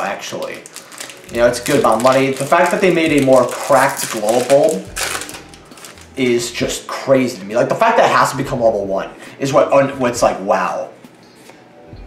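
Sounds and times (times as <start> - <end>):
foil pack crinkling: 0.0 - 6.5
man talking: 1.3 - 4.9, 6.2 - 10.9.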